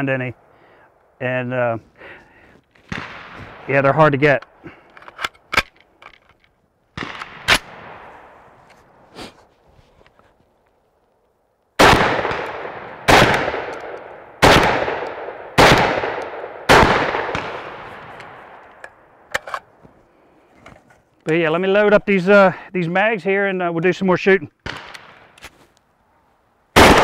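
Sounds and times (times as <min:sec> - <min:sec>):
shotgun shots echoing: 0:02.9 - 0:04.6, 0:07.0 - 0:08.4, 0:11.8 - 0:18.6, 0:24.6 - 0:25.4, 0:26.8 - 0:27.0
gun handling clicks: 0:04.4 - 0:07.7, 0:13.4 - 0:14.2, 0:17.3 - 0:19.7.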